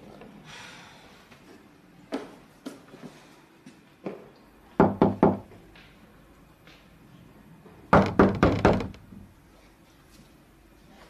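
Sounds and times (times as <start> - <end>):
knocks on a door: 4.8 - 5.6, 7.9 - 9.0.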